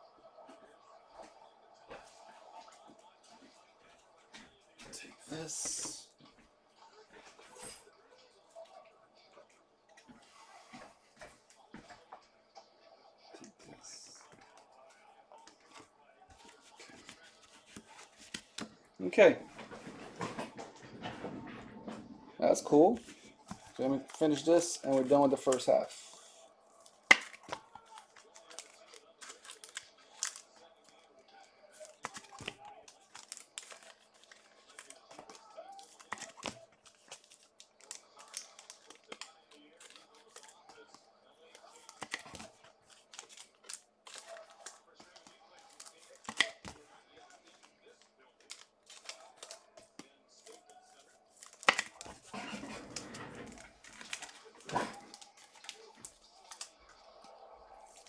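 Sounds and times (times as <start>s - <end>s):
wrappers crinkling and rustling: 26.8s - 58.0s.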